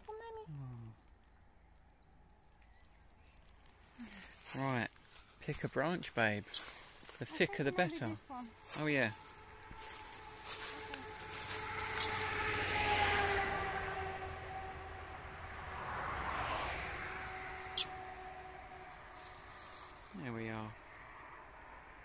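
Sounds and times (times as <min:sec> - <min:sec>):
distant engine drone: 0:05.1 - 0:22.0.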